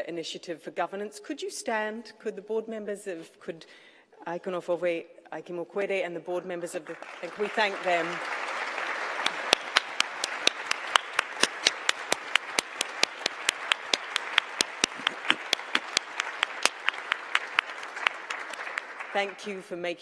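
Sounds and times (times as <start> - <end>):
audience applauding: 6.9 - 19.6
sharp nearby hand claps: 8.5 - 19.1.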